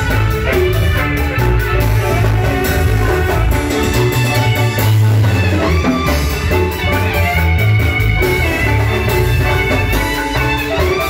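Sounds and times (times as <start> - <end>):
bass line: 0.0 - 11.0
drums: 0.0 - 11.0
marimba: 0.0 - 11.0.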